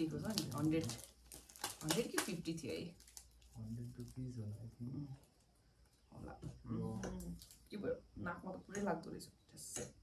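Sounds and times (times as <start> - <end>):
plastic sachets crinkling and tearing: 0.0 - 4.4.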